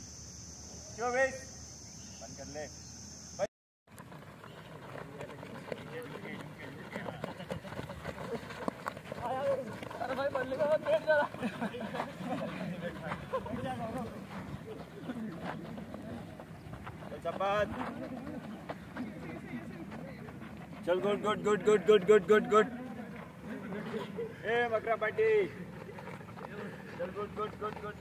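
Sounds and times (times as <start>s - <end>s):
feet shuffling on dirt: 3.9s - 28.0s
young men calling out: 20.8s - 23.0s.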